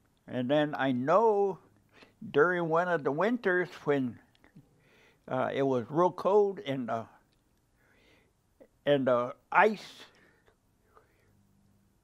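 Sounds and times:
man speaking: 0:00.3 - 0:04.3, 0:05.3 - 0:07.3, 0:08.7 - 0:10.2.

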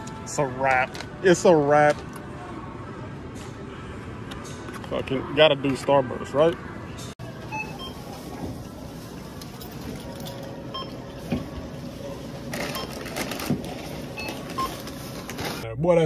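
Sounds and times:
store background noise: 0:00.0 - 0:16.0
barcode scanner beeps: 0:07.5 - 0:08.1, 0:10.7 - 0:11.0, 0:12.7 - 0:13.1, 0:14.1 - 0:14.9.

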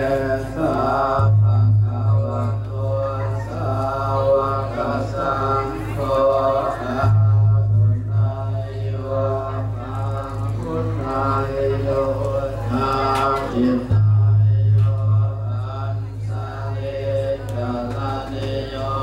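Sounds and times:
loud low hum: 0:00.0 - 0:19.0
voices chanting: 0:00.0 - 0:19.0.

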